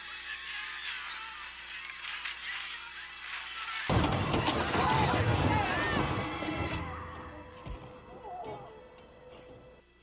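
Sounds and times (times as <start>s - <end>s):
people screaming and shouting: 0.0s - 2.4s, 3.9s - 9.2s
loud rumbling crash: 3.9s - 7.9s.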